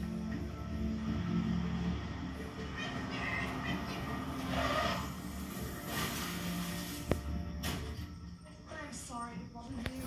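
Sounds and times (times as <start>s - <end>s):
television background music: 0.0s - 10.0s.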